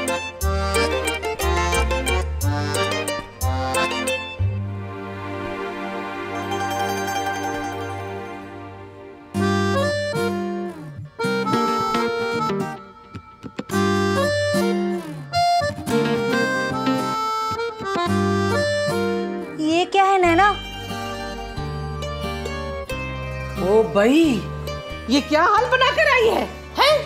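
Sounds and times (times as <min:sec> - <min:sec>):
background music score: 0:00.0 - 0:27.0.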